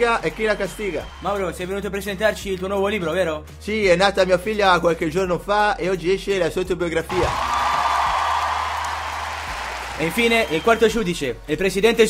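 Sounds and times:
audience applauding: 0.0s - 2.0s, 7.1s - 11.4s.

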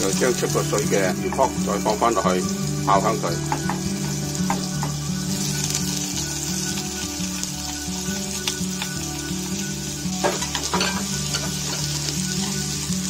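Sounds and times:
background music with bass line: 0.0s - 13.0s
fish sizzling in hot oil: 0.0s - 13.0s.

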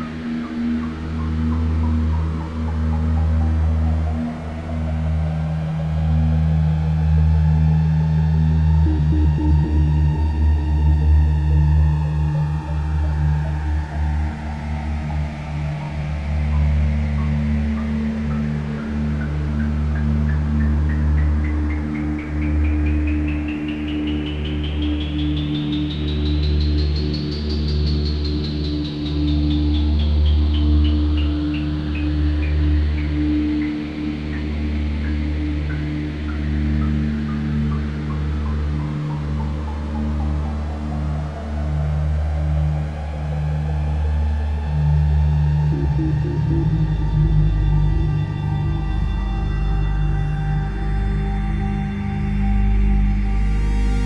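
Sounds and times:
low synthesizer drones: 0.0s - 54.0s.

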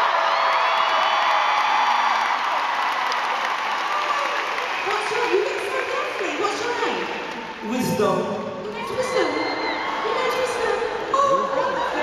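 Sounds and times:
arena crowd cheering: 0.0s - 7.9s, 8.6s - 12.0s.

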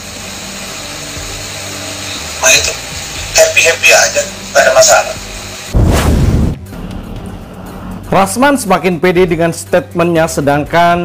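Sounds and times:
steady hiss: 0.0s - 5.8s.

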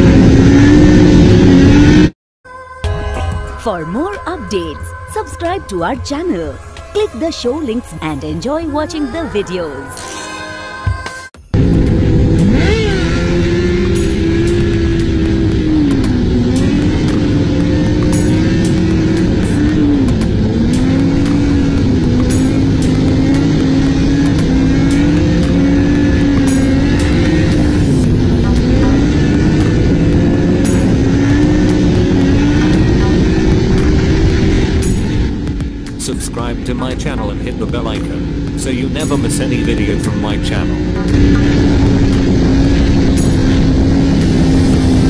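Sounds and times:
motorcycle engine revving: 0.0s - 2.2s, 11.6s - 45.0s.

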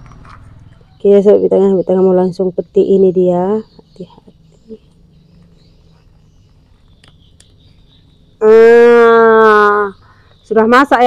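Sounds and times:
quiet outdoor background: 0.0s - 11.0s.

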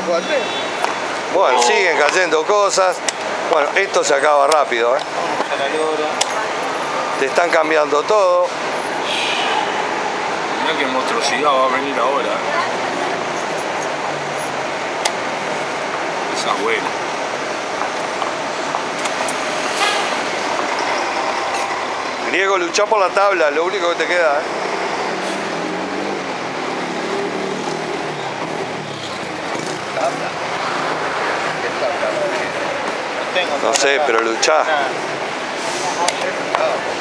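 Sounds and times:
street traffic noise: 0.0s - 37.0s
vehicle passing close by: 24.4s - 32.6s.

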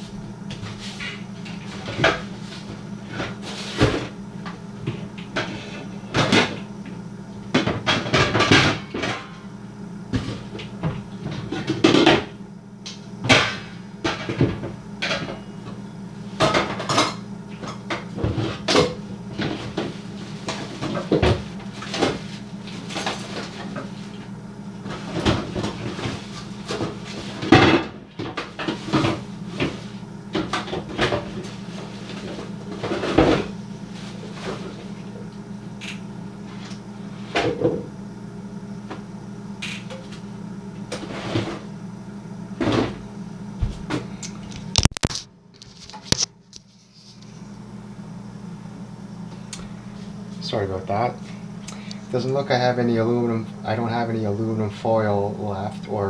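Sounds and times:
steady low hum: 0.0s - 56.0s.

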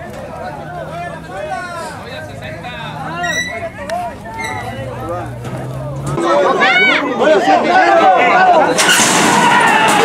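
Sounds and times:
crowd shouting: 0.0s - 10.0s
horses breaking from gate: 8.7s - 10.0s
metal starting gate doors banging: 8.7s - 10.0s.

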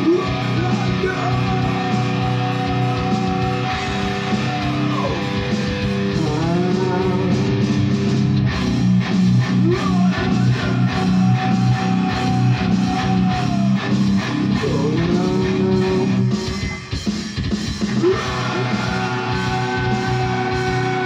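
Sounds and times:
man singing: 0.0s - 5.5s, 6.1s - 7.8s, 9.6s - 16.7s, 18.0s - 21.0s
distorted electric guitar riff: 0.0s - 21.0s.

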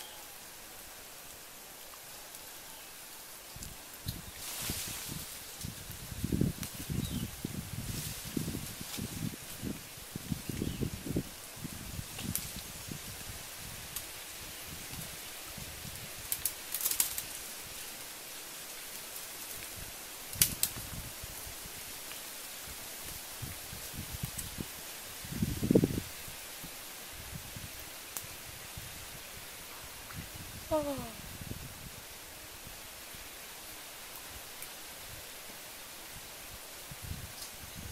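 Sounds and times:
leaves and branches rustling: 0.0s - 37.9s
twigs snapping: 16.2s - 17.4s, 20.3s - 20.9s.

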